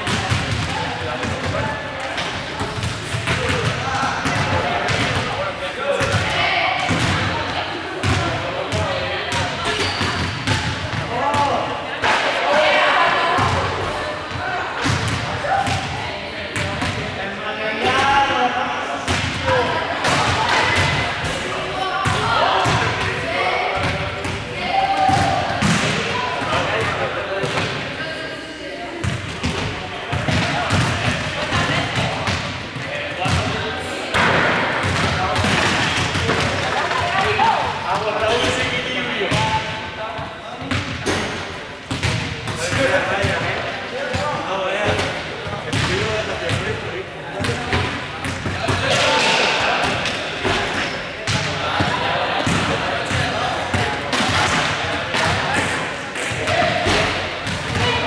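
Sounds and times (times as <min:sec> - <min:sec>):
many voices chattering: 0:00.0 - 0:58.0.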